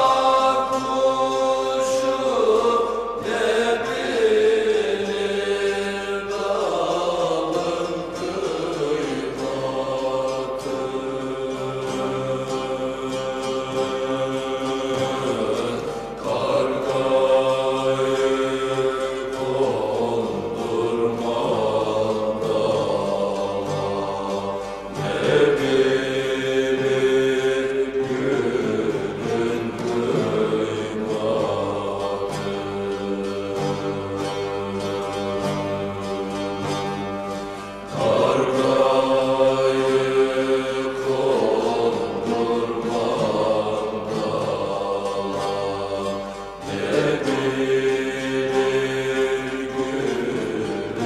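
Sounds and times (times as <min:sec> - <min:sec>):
plucked string ensemble: 0:00.0 - 0:51.0.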